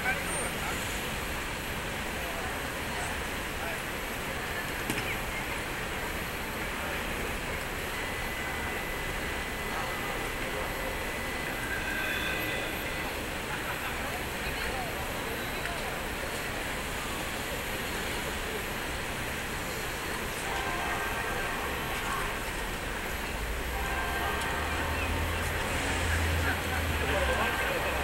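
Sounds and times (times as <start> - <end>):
traffic noise: 0.0 - 28.0
voices of passers-by: 0.0 - 28.0
faint high steady tone: 6.8 - 15.7.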